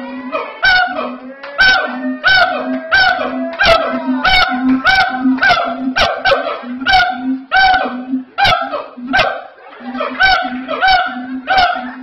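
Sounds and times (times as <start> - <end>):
gibbon barking whoops: 0.1 - 12.0.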